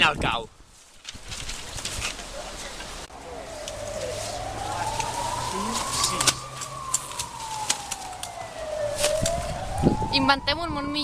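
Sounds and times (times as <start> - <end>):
siren wailing: 3.1 - 11.0.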